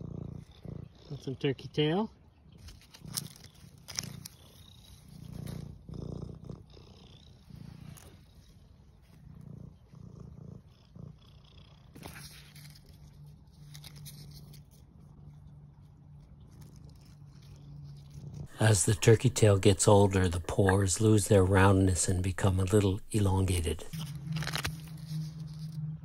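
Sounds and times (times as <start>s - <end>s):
cat purring: 0.0s - 26.0s.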